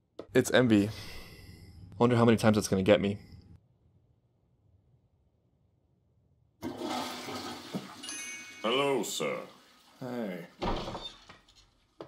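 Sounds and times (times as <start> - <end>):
shower water running: 6.6 - 11.0.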